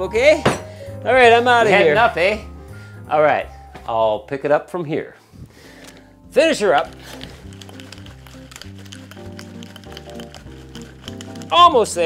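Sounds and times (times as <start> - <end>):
cocktail shaker shaken hard: 6.8 - 11.8.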